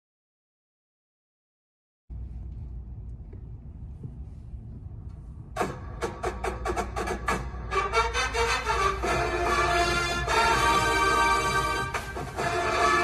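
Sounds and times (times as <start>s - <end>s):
low steady hum: 2.1s - 13.0s
band music: 5.6s - 13.0s.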